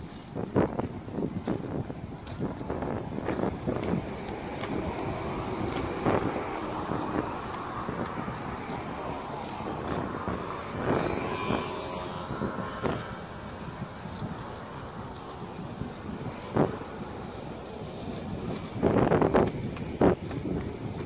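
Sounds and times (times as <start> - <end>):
outdoor rumble: 0.0 - 21.0
wind buffeting microphone: 0.0 - 21.0.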